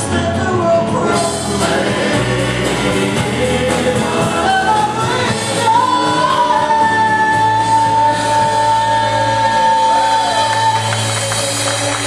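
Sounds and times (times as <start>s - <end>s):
voices singing: 0.0s - 11.5s
drums: 0.0s - 12.0s
guitar: 0.0s - 12.0s
piano: 0.0s - 12.0s.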